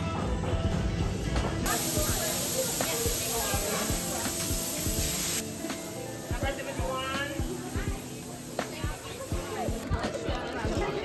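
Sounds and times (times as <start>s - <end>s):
steam wand hissing: 1.7s - 9.8s.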